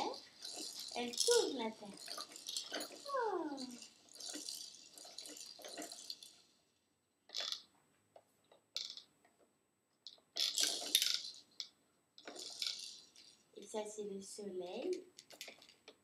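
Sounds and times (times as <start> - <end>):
plastic toy globe rattling: 0.0 - 7.7, 8.7 - 9.2, 10.0 - 13.7, 14.6 - 16.0.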